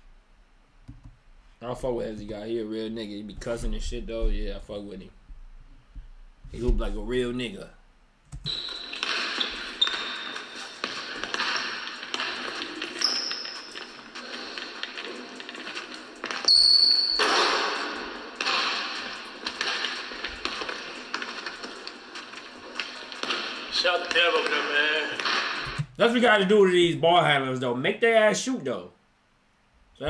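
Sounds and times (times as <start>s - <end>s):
basketball bouncing on wooden floor: 8.4s - 17.8s
sneaker squeaks: 8.4s - 23.7s.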